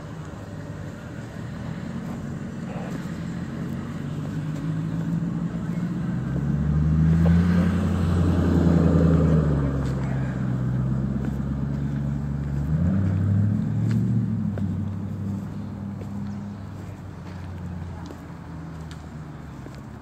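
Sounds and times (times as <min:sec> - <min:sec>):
vehicle engine running: 0:00.0 - 0:20.0.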